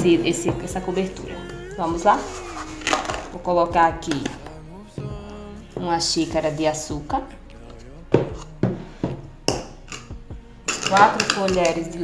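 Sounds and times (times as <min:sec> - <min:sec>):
woman speaking: 0:00.0 - 0:02.4, 0:03.3 - 0:04.5, 0:05.7 - 0:07.4, 0:10.8 - 0:12.0
kitchen things clattering: 0:10.7 - 0:12.0.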